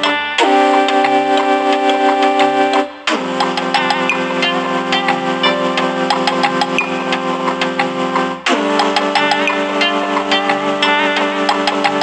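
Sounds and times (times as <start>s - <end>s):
short plucked synth notes: 0.0s - 12.0s
synthesizer drone chord: 0.0s - 12.0s.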